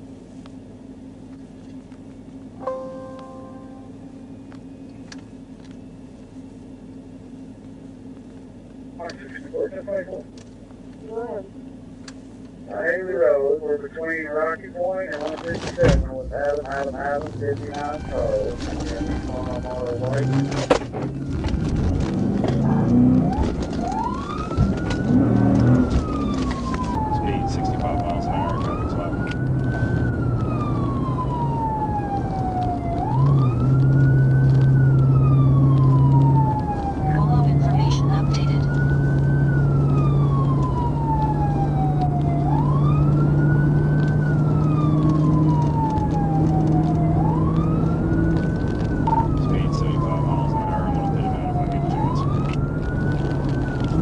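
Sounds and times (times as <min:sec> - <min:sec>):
car engine and road noise: 0:00.0 - 0:54.0
police siren wailing: 0:12.7 - 0:54.0.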